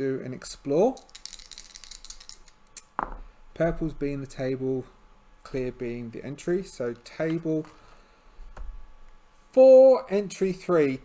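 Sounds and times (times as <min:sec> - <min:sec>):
dice rattling in a tray: 0:00.8 - 0:02.6.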